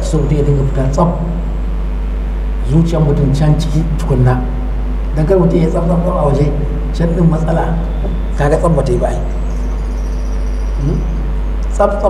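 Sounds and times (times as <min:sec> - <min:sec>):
man speaking: 0:00.0 - 0:01.4, 0:02.6 - 0:09.4, 0:11.7 - 0:12.0
low electrical hum: 0:00.0 - 0:12.0.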